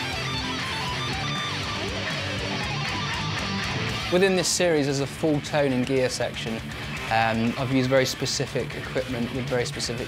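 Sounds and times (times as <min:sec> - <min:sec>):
electric guitar lead line: 0:00.0 - 0:10.0.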